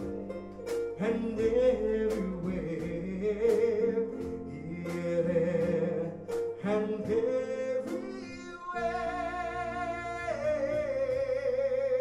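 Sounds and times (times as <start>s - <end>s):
man singing: 0.9s - 12.0s.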